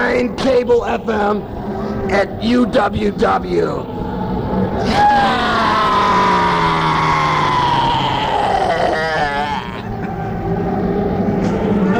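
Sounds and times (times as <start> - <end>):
man's long scream: 4.8 - 9.9.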